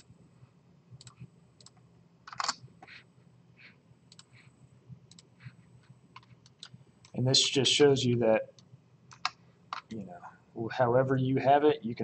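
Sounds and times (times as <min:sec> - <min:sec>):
mouse and keyboard clicks: 0:09.1 - 0:09.9.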